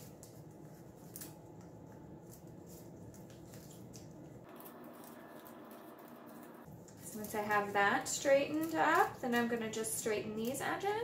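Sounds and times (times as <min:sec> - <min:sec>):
low room hum: 0:00.0 - 0:11.0
paper strips rustling and clicking: 0:00.0 - 0:11.0.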